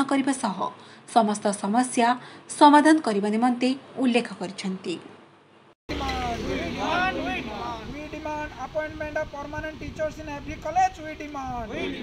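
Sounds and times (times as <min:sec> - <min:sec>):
street traffic rumble: 0:05.6 - 0:12.0
people's voices outdoors: 0:05.9 - 0:12.0.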